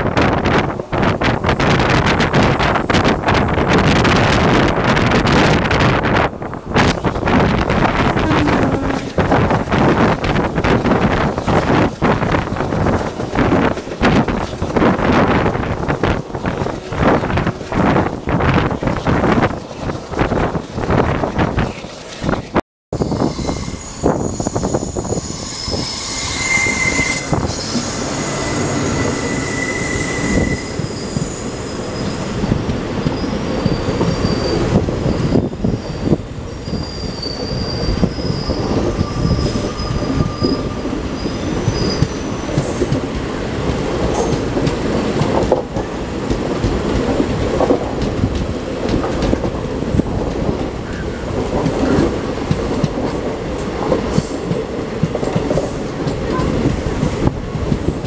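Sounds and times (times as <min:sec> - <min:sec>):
passing train coaches: 0:00.0 - 0:58.0
train wheels rumbling and clattering: 0:00.0 - 0:58.0
high wheel squeals: 0:23.0 - 0:32.4, 0:33.2 - 0:43.0.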